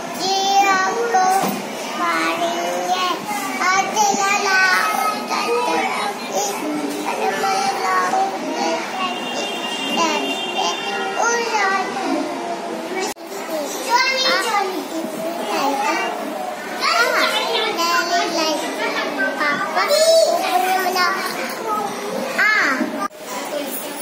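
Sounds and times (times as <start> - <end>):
children chattering and calling out: 0.0 - 24.0.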